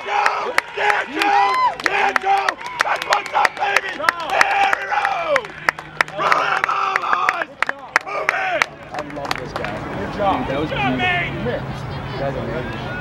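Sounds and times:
crowd cheering and yelling: 0:00.0 - 0:13.0
rapid clapping: 0:00.5 - 0:10.1.

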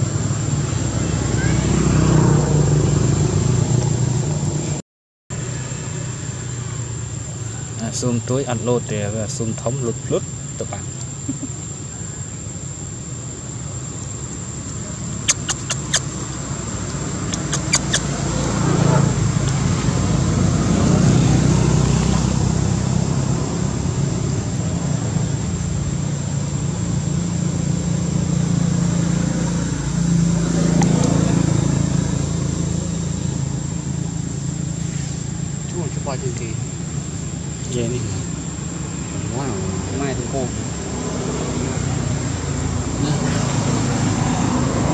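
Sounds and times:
low outdoor rumble: 0:05.4 - 0:44.9
sharp clicks: 0:15.3 - 0:18.1.

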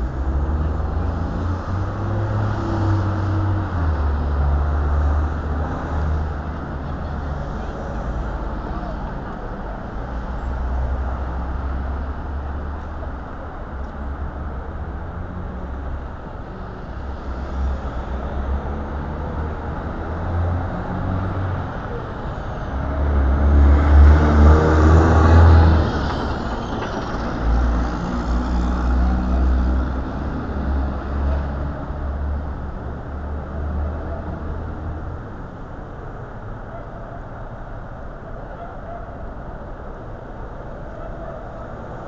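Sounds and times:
city street traffic: 0:00.0 - 0:42.0.

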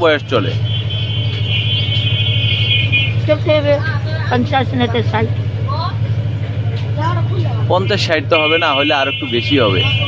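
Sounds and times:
low droning motor hum: 0:00.0 - 0:10.0.

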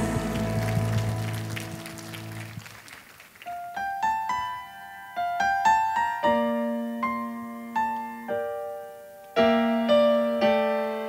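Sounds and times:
band final chord: 0:00.0 - 0:01.7
electric piano notes: 0:00.0 - 0:02.6
hand clapping: 0:00.0 - 0:03.6.

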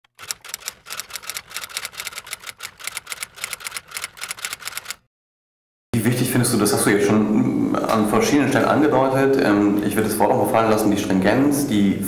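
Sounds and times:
rapid keystroke clicks: 0:00.1 - 0:05.0.

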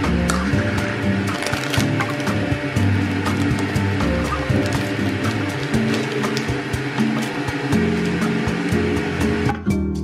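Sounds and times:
background music: 0:00.0 - 0:10.0
foil and plastic sachets crinkling: 0:01.2 - 0:07.7.

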